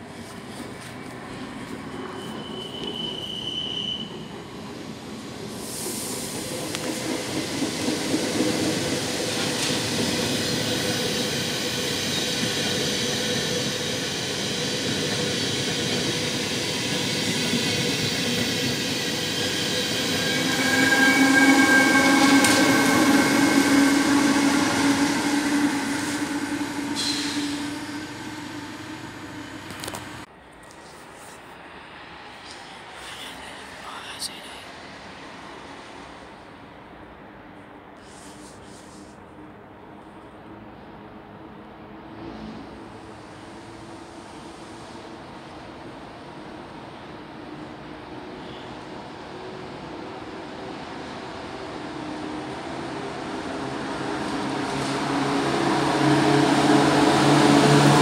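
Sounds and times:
train running along platform: 0.0s - 58.0s
wheel squeal and motor whine: 2.0s - 4.2s, 18.4s - 29.9s.

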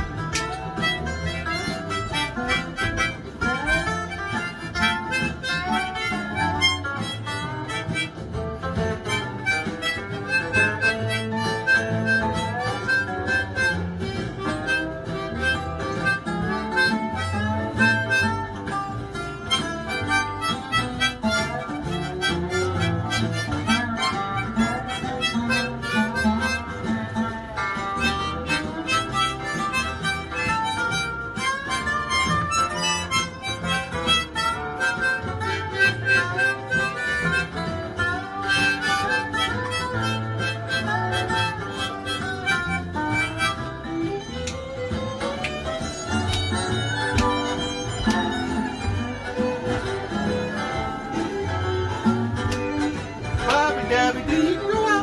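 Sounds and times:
guitar accompaniment: 0.0s - 55.0s
harmonica melody: 0.0s - 55.0s.

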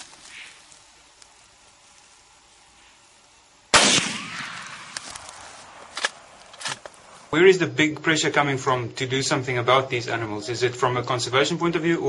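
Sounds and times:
rifle shot: 3.7s - 6.8s.

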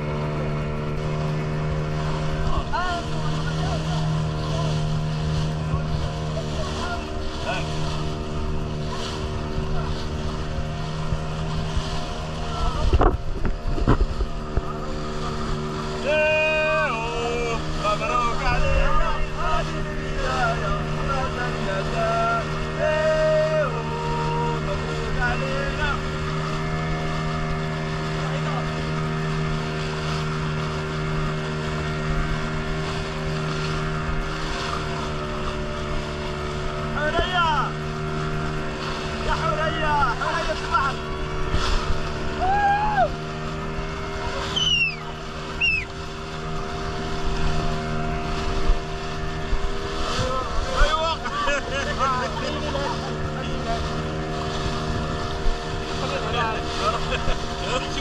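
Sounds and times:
motorboat engine droning: 0.0s - 58.0s
water rushing along hull: 0.0s - 58.0s
voices calling out: 34.6s - 47.1s.

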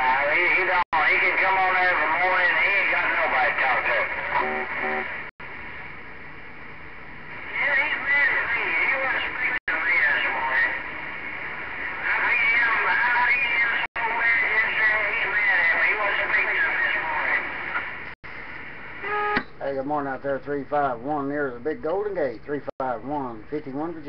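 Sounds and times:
garbled radio voice: 0.0s - 4.8s, 7.5s - 10.8s
radio static hiss: 0.0s - 6.0s, 7.2s - 19.5s.

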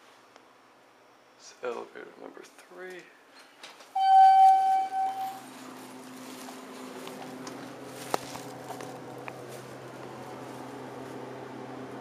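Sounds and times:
loud electronic beep: 4.0s - 5.4s
elevator running hum: 4.0s - 12.0s.

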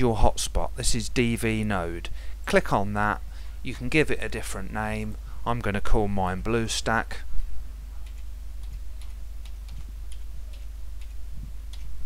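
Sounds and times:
steady low hum: 0.0s - 12.0s
keyboard typing clicks: 8.0s - 11.9s.

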